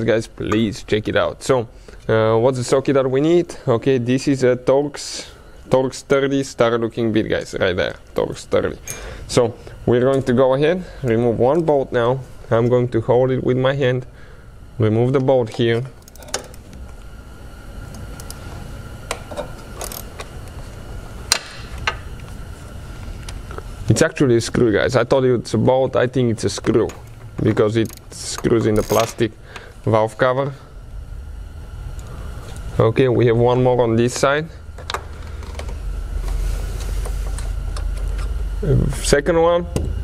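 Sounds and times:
steady low hum: 0.0s - 40.0s
ratchet clicks: 16.0s - 16.6s, 27.8s - 29.2s.

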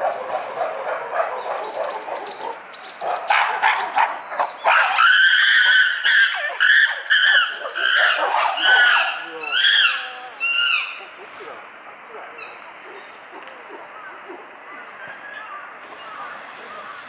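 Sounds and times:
chimpanzee screaming cries: 3.2s - 11.2s.

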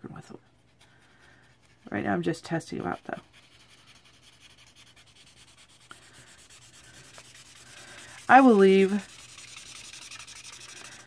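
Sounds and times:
marker rubbing on paper: 0.7s - 11.0s.

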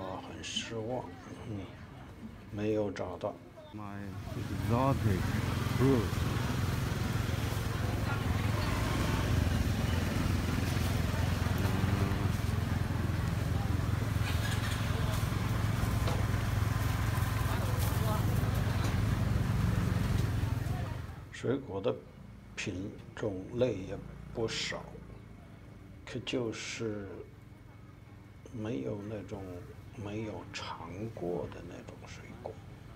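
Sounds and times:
people talking: 0.0s - 1.9s, 3.8s - 6.6s, 7.3s - 16.2s, 17.4s - 22.0s
small engine humming: 4.2s - 21.2s.

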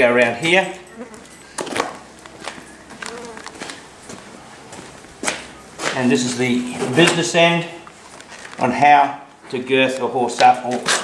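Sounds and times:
footsteps on concrete: 1.2s - 6.1s.

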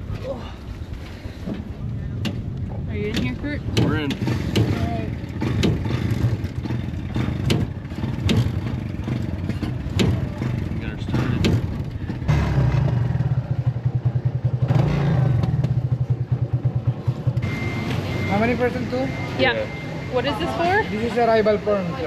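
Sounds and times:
sidecar clattering over bumps: 1.5s - 13.2s
motorcycle engine running: 2.5s - 22.0s.

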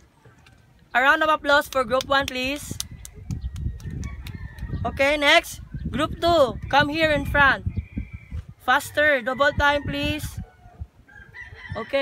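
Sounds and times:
hands clapping: 1.6s - 4.7s.

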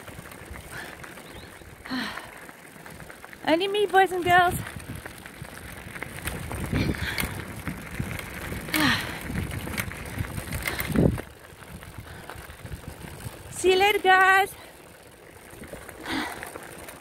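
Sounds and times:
bicycle tyres rumbling on gravel: 0.0s - 17.0s
bike rattling and clicking: 0.0s - 17.0s.

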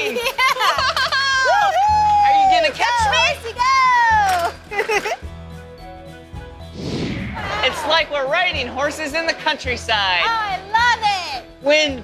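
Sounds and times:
background music: 0.0s - 12.0s
people whooping and yelling: 1.1s - 4.5s, 7.4s - 8.2s.

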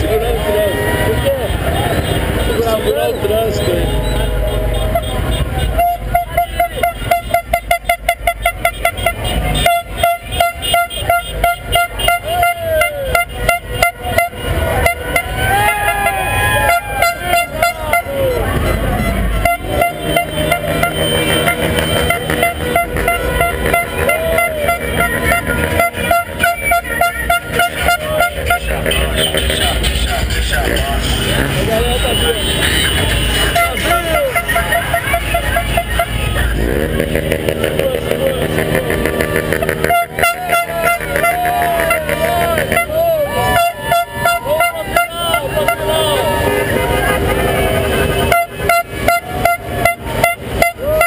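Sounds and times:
held car horn: 0.0s - 51.0s
rhythmic pulsing car horns: 0.0s - 51.0s
people shouting: 12.0s - 13.5s, 14.4s - 36.6s, 37.5s - 51.0s.

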